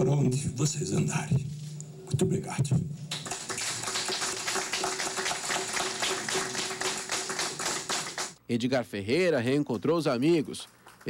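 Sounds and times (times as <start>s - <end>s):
people applauding: 3.1s - 8.4s.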